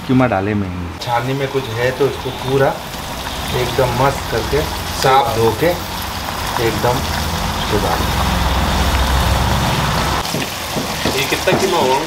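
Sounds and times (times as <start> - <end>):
meat sizzling in hot oil: 1.0 - 12.0.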